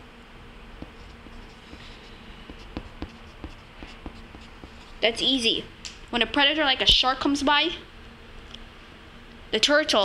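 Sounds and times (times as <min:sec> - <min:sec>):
faint steady hum: 0:00.0 - 0:10.0
pencil scratching on paper: 0:00.8 - 0:05.1.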